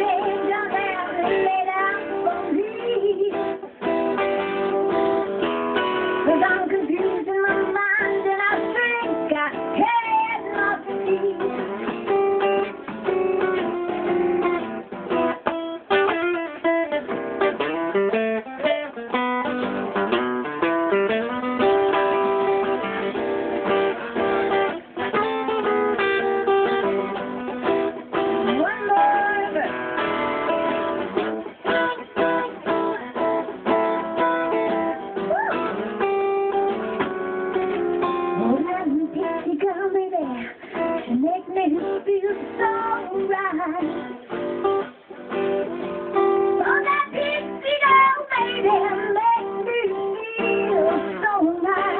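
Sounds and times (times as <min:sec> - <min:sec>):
acoustic guitar strumming: 0:00.0 - 0:51.9.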